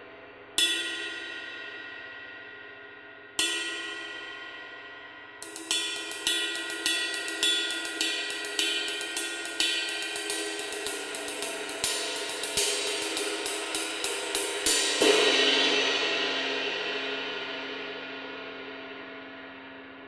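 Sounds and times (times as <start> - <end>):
ride cymbal struck with drumstick: 0.6 - 19.4.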